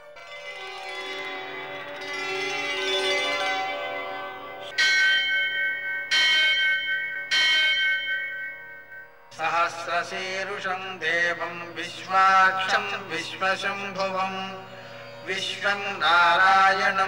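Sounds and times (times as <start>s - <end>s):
sustained music: 0.0s - 17.0s
temple bell ringing: 0.0s - 17.0s
person chanting: 9.3s - 17.0s.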